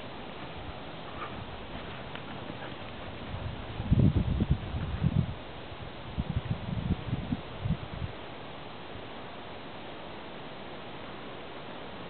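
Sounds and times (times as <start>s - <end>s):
dog paws thudding on grass: 0.0s - 5.2s
faint outdoor hiss: 0.0s - 12.0s.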